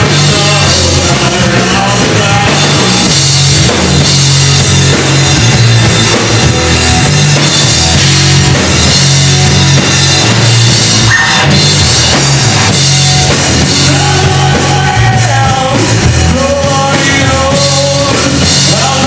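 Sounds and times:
drum kit: 0.0 - 19.0
loud hard rock band: 0.0 - 19.0.

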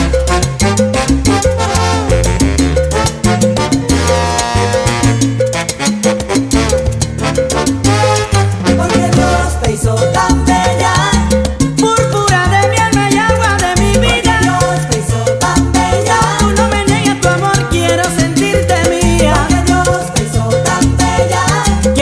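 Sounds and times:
salsa music: 0.0 - 22.0.

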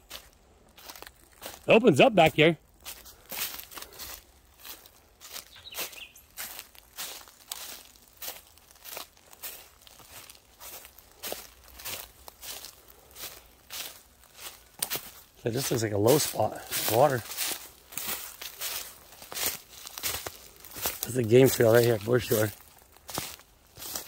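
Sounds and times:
footsteps crunching dry leaves: 0.0 - 24.0.

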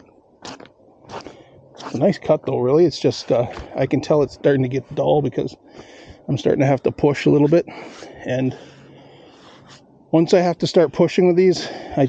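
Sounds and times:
gloved hand brushing sawdust: 0.5 - 2.2.

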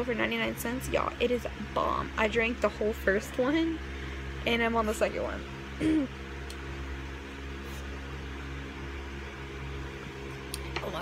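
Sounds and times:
appliance humming: 0.0 - 11.0.

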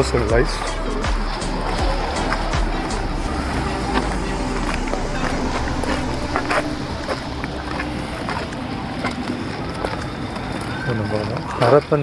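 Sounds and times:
footsteps on gravel path: 0.5 - 12.0.

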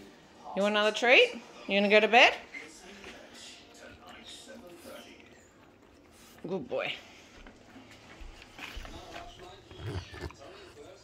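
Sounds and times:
dog making faint vocal noises: 8.9 - 11.0.

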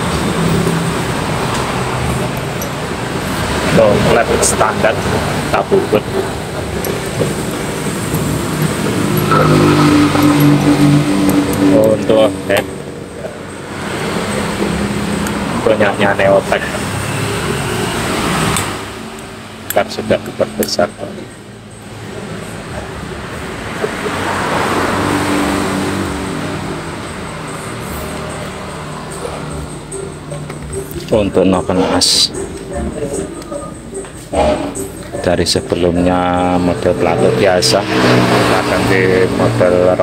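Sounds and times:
vehicle passing by: 0.0 - 19.1, 21.8 - 40.0
vehicle engine running: 21.2 - 37.4.

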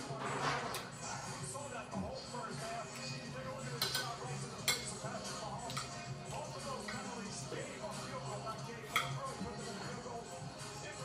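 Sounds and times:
cutlery clinking against dishes: 0.0 - 1.0, 2.9 - 7.2, 8.5 - 9.9
television voices and music: 0.0 - 11.0.

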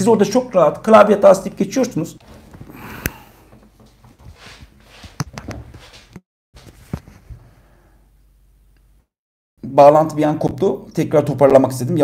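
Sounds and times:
clicks and knocks at desk: 2.4 - 6.2.

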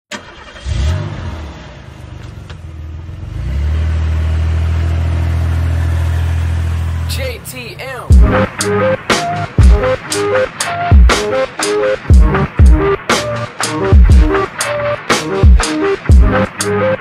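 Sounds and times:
car engine starting and running: 0.1 - 17.0
person speaking: 7.1 - 8.4.

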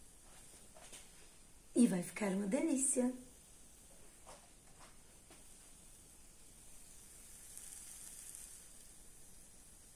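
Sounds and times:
batter sizzling in a frying pan: 0.0 - 9.9.

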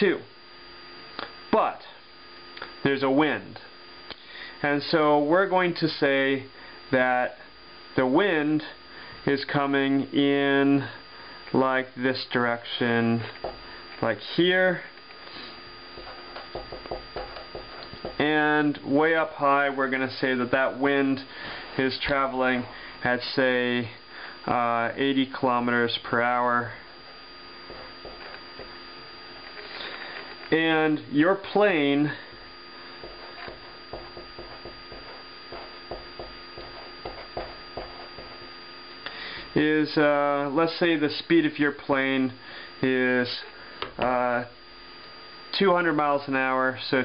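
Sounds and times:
steady electrical hum: 0.0 - 47.0
pen writing on paper: 33.0 - 38.4.

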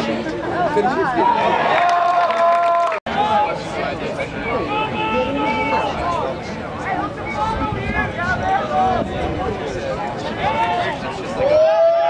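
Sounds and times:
voices shouting and calling out: 0.0 - 12.0.

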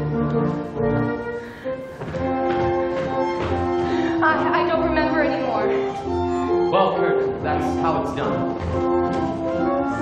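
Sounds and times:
orchestral dance music with strings: 0.0 - 10.0.

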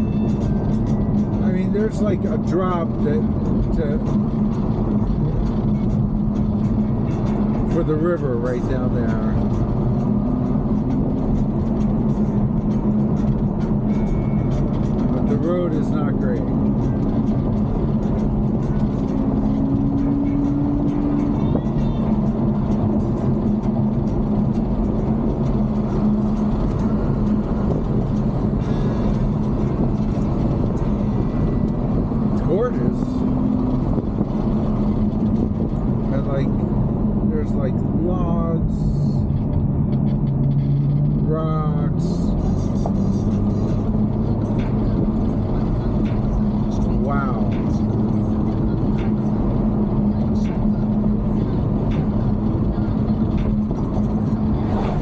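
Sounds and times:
car engine drone inside cabin: 0.0 - 55.0
road and tyre noise: 0.0 - 55.0.

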